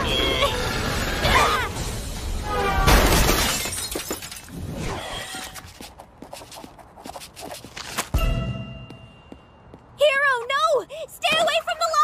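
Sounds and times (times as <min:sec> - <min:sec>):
glass and metal debris clattering: 0:02.9 - 0:04.6.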